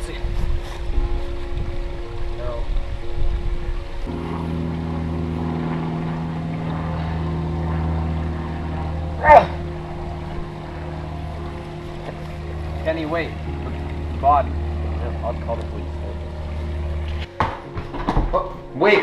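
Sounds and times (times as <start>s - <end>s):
low drone of held tones: 0.0s - 19.0s.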